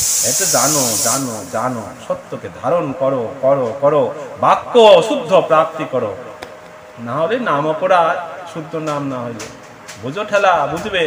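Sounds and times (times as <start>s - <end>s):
loud steady hiss: 0.0s - 6.4s
man talking: 0.2s - 6.2s, 7.0s - 11.0s.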